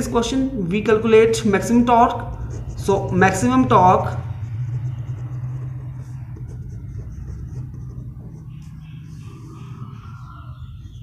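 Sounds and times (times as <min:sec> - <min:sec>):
low background rumble: 0:00.0 - 0:11.0
pen scratching on paper: 0:02.0 - 0:09.8.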